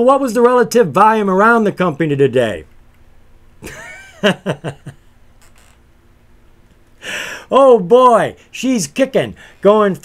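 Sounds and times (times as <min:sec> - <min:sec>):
man laughing: 0:03.6 - 0:05.2.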